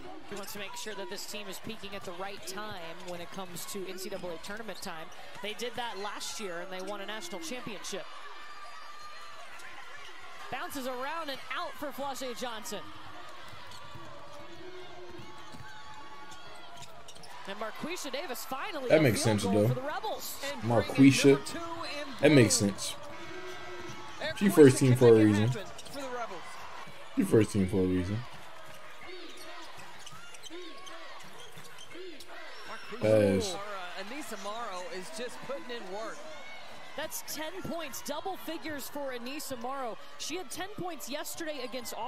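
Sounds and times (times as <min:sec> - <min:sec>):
arena crowd murmur: 0:00.0 - 0:42.0
sneakers squeaking on hardwood: 0:28.3 - 0:33.0.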